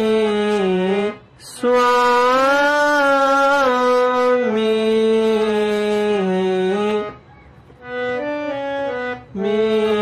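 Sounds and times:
person singing: 0.0s - 7.2s, 9.1s - 10.0s
harmonium sustained note: 0.0s - 10.0s.

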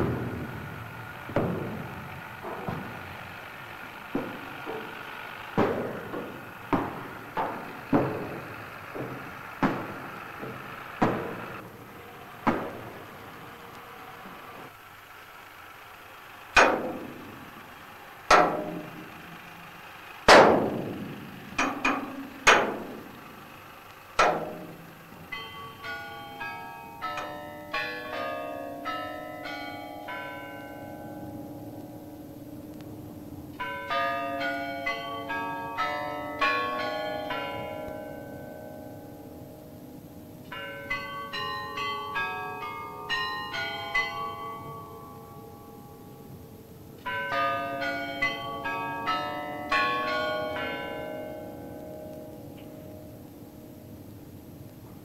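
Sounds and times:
sharp metallic knocks: 0.0s - 11.7s, 12.4s - 13.1s, 16.6s - 17.4s, 18.3s - 19.1s, 20.3s - 23.1s, 24.2s - 28.3s
bells ringing: 0.0s - 14.8s, 18.3s - 23.5s, 24.1s - 54.0s.

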